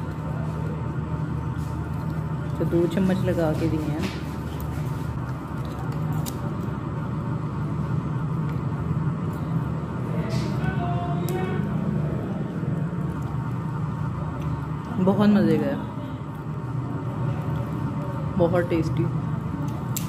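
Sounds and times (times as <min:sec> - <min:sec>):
low motor hum: 0:00.0 - 0:20.0.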